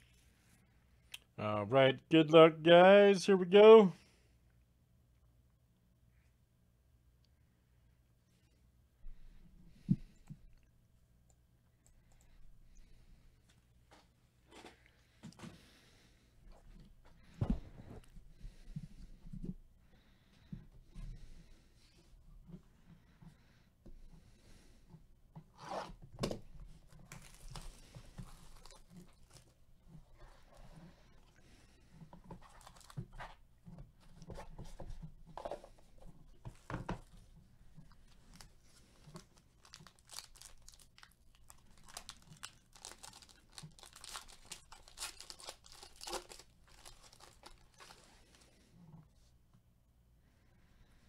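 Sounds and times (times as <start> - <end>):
plastic crinkling: 26.8 - 30.6, 32.0 - 33.4, 37.7 - 48.6
plastic wrap ripping: 27.0 - 29.5, 39.2 - 48.4.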